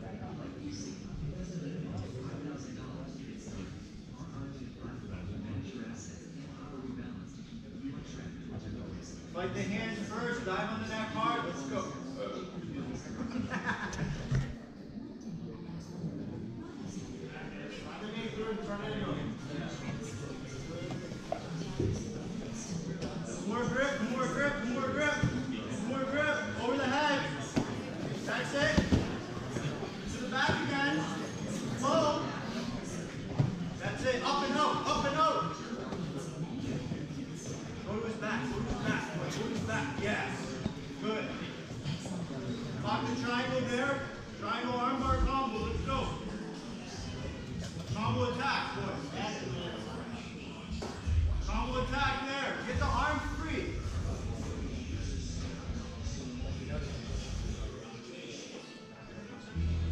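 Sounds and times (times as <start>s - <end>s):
people talking and calling out: 0.0s - 59.9s.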